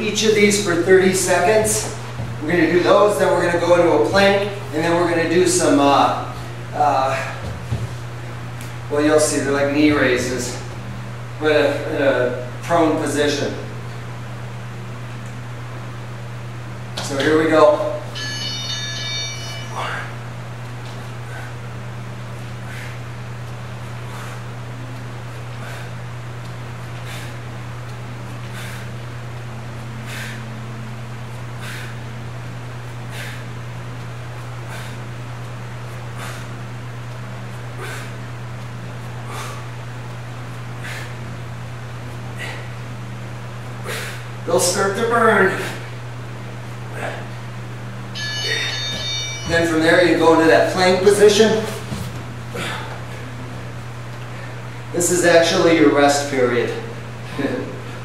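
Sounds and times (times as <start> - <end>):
steady low hum: 0.0 - 58.0
interval timer beep: 48.2 - 49.9.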